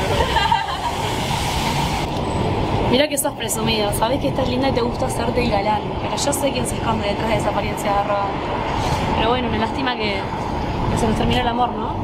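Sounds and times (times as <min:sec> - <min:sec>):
street traffic rumble and hiss: 0:00.0 - 0:12.0.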